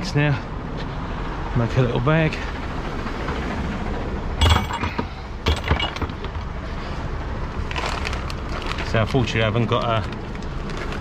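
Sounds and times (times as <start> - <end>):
hand rummaging through plastic bins: 4.4 - 6.6, 7.6 - 11.0
tools clinking and knocking: 4.4 - 6.6.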